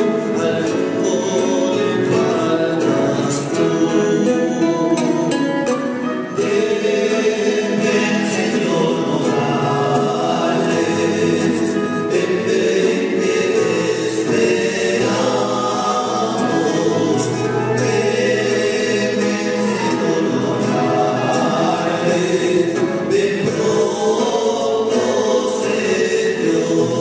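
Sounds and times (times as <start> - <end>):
choir singing a hymn: 0.0 - 27.0.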